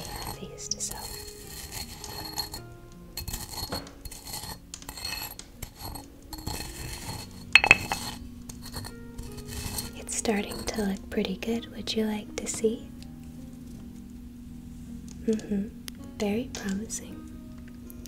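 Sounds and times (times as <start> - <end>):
scraping in small hard vessel: 0.0 - 10.9
soft background music: 0.0 - 18.0.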